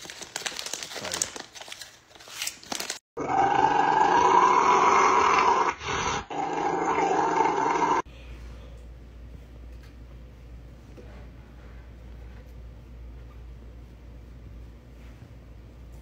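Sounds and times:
snack bag crinkling: 0.0 - 3.0
dog growling howl: 3.2 - 8.0.

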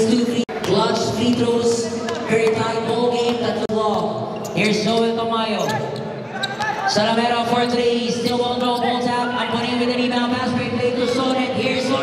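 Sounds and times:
man talking: 6.8 - 12.0.

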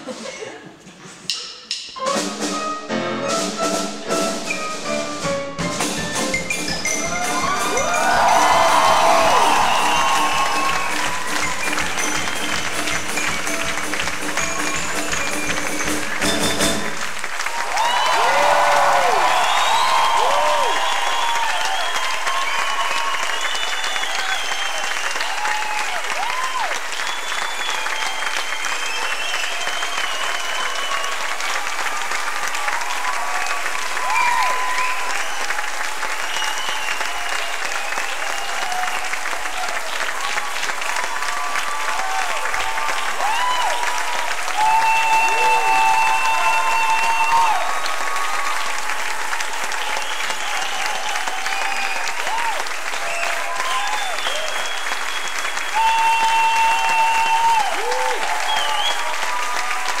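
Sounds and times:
audience applauding: 3.3 - 60.0.

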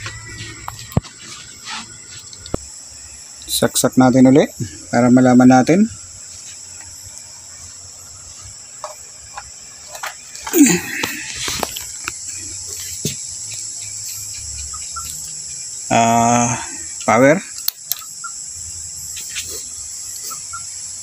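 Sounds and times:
crickets chirring: 0.0 - 21.0.

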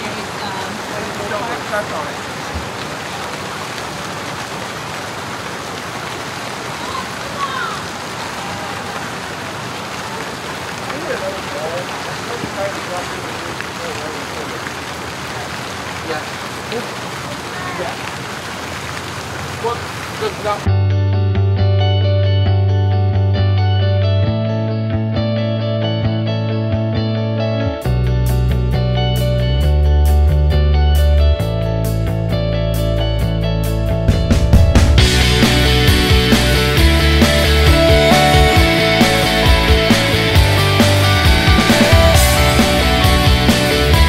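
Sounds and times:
water splashing from fountains: 0.0 - 20.7, 34.6 - 44.0
background music with guitar: 20.7 - 44.0.

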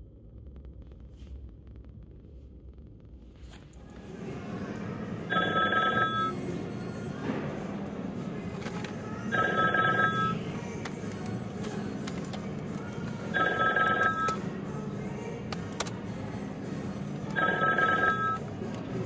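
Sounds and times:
electronic telephone ringing: 5.3 - 6.4, 9.3 - 10.4, 13.4 - 14.4, 17.4 - 18.4.

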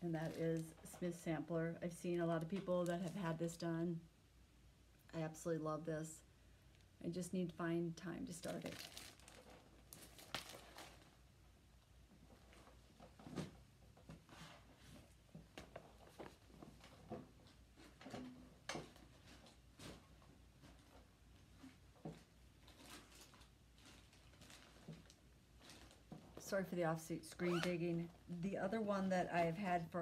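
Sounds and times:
soft knocks and rustles of rummaging: 12.1 - 26.6.

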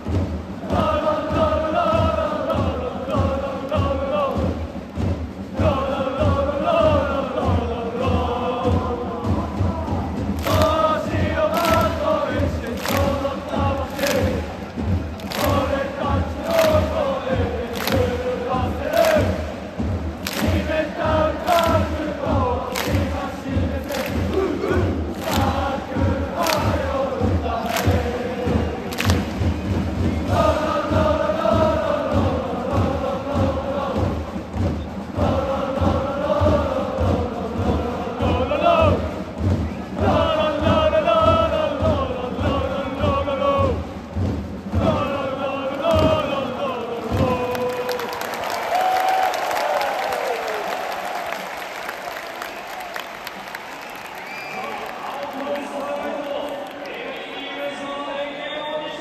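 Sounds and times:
football crowd chanting: 0.0 - 4.8, 5.4 - 43.9, 44.7 - 53.2
steady drum beat: 0.0 - 55.8
crowd cheering and applause: 8.6 - 32.7, 45.8 - 58.0.

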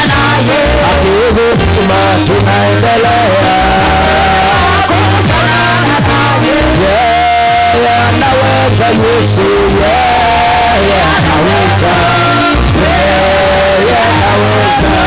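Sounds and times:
band accompaniment: 0.0 - 15.0
man singing into microphone: 0.0 - 15.0.

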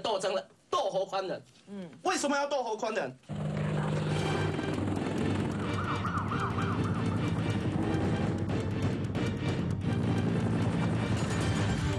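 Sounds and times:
news theme music with steady beat: 4.1 - 11.9
siren-like yelping effect: 5.4 - 7.8.

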